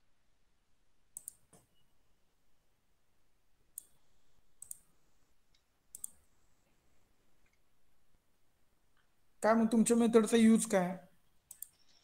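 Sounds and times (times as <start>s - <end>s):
faint sharp clicks: 4.6s - 4.8s, 5.5s - 6.2s, 11.5s - 11.9s.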